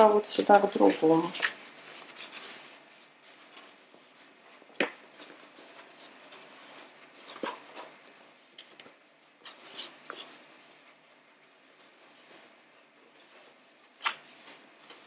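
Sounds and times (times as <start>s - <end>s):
fabric rustling and rubbing: 0.0s - 15.0s.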